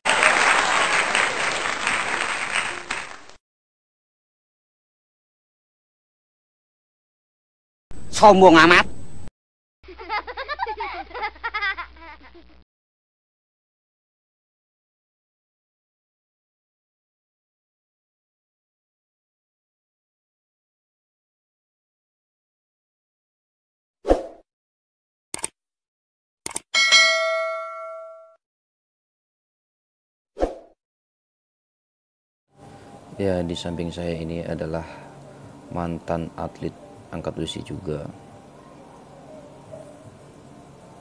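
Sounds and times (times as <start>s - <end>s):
quick double clicks: 25.4s - 25.6s, 26.4s - 26.7s
notification bell ding: 26.8s - 28.4s.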